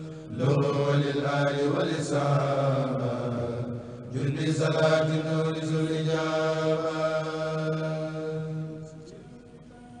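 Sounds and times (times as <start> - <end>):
men chanting in unison: 0.0 - 9.1.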